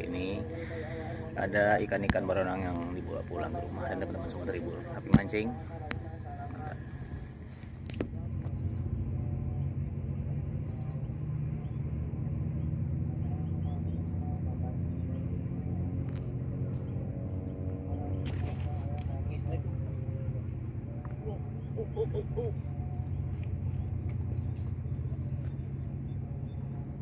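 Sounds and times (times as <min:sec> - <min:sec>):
boat diesel engine rumbling: 0:00.0 - 0:27.0.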